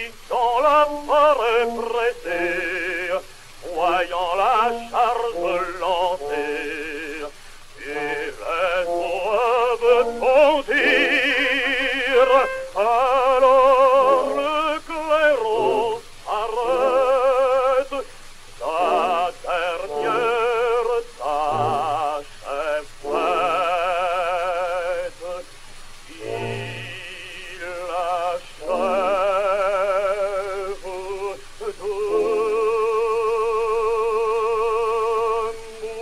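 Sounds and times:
man singing opera with vibrato: 0.0 - 36.0
orchestral accompaniment: 3.7 - 14.6, 18.6 - 22.2, 23.0 - 24.5, 26.1 - 27.9, 28.6 - 30.0.

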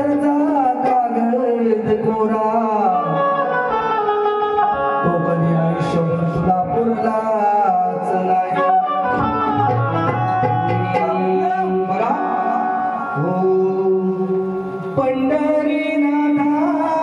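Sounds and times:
man singing through pa: 0.0 - 3.8, 5.0 - 17.0
instrumental accompaniment: 0.0 - 17.0.

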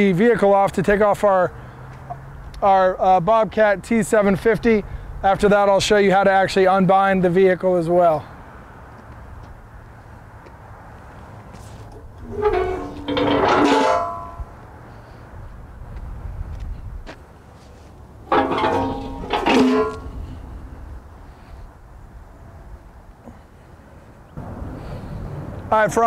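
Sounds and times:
metal ramp clanging down: 12.2 - 14.5, 18.3 - 20.5.

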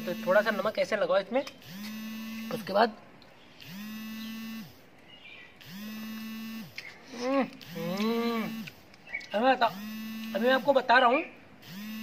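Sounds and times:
small electric motor spinning: 1.6 - 2.7, 3.6 - 4.8, 5.6 - 6.9, 7.6 - 8.8, 9.6 - 10.9, 11.6 - 12.0.

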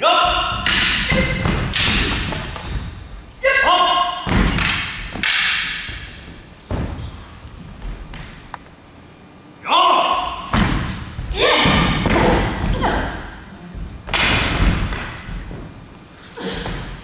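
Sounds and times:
people shouting: 0.0 - 2.4, 3.4 - 5.8, 9.6 - 10.5, 11.3 - 13.4
bare feet stamping on wooden floor: 5.8 - 8.6, 13.8 - 16.0.

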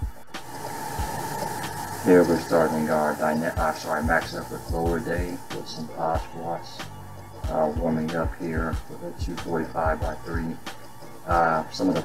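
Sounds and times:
background music: 0.0 - 12.0
steady hiss: 0.0 - 12.0.

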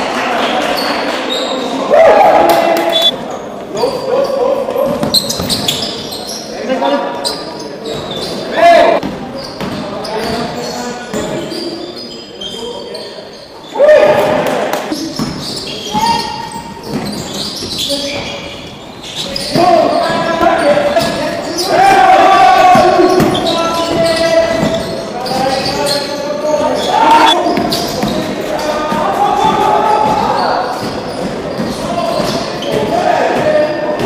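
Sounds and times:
players shouting: 13.6 - 15.0, 19.4 - 34.0.

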